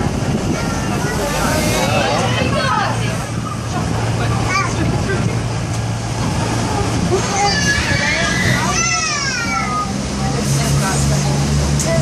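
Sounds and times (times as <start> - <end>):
train engine hum: 0.0 - 12.0
wheels rumbling on track: 0.0 - 12.0.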